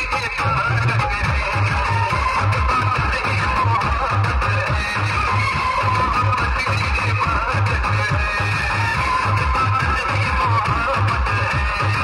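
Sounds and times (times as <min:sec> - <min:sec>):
loud dance music: 0:00.0 - 0:12.0
pulsing bass beat: 0:00.0 - 0:12.0.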